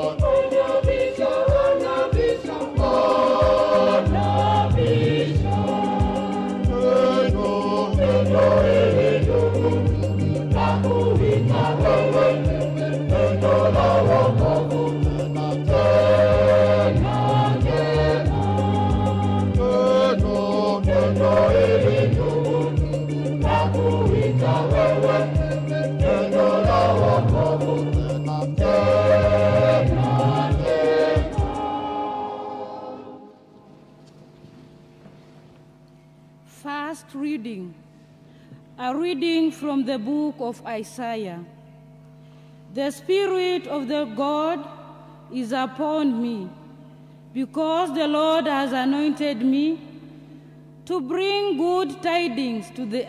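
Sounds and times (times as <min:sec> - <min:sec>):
steady beat: 0:00.0 - 0:32.1
choir singing a hymn: 0:00.0 - 0:33.7
low instrumental tones: 0:00.0 - 0:36.5
sustained low bass notes: 0:02.8 - 0:31.7.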